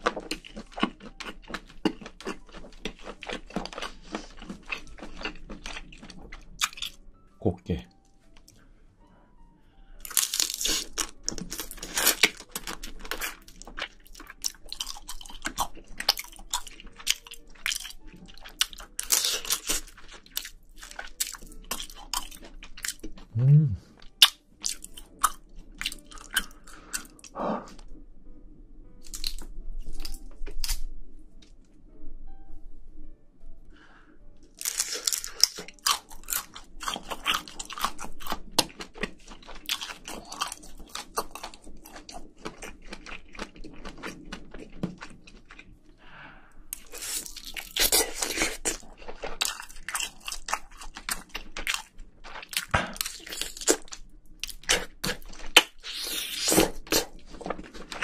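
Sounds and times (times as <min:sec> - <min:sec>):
crunchy chewing: 0:00.0 - 0:07.0, 0:10.0 - 0:23.3, 0:23.9 - 0:27.9, 0:34.5 - 0:46.0, 0:46.7 - 0:58.0.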